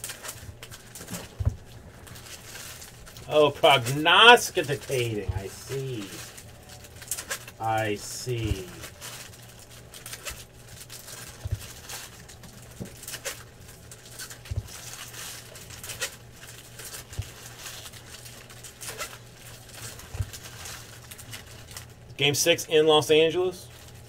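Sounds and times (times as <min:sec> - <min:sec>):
foil wrappers rustling: 0:00.0 - 0:24.0
low steady hum: 0:00.0 - 0:24.0.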